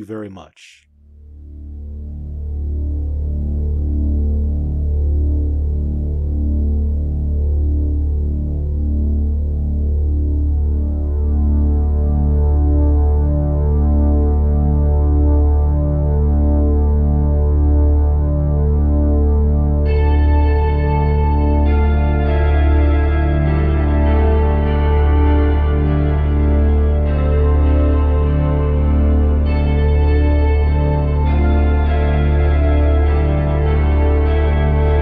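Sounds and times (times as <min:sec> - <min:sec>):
synthesiser drone: 0:01.2 - 0:35.0.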